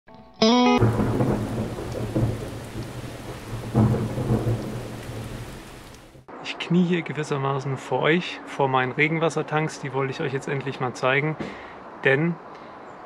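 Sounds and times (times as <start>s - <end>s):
steady rain hiss: 0.8s - 6.3s
thunder rumbling: 0.8s - 6.3s.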